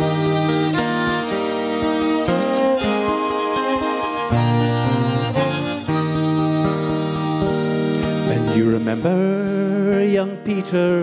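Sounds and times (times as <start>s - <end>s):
bowed fiddle: 0.0s - 9.2s
harmonica melody: 0.0s - 11.0s
strummed acoustic guitar: 0.0s - 11.0s.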